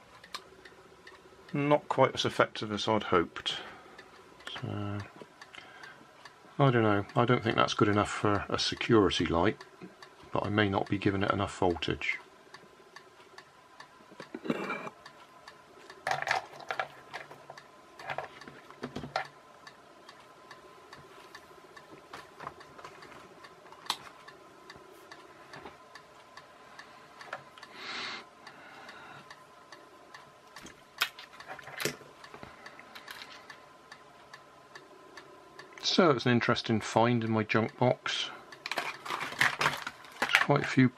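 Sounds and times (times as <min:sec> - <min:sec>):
faint steady hum: 0:00.0 - 0:40.9
small items clicking on workbench: 0:38.6 - 0:40.8.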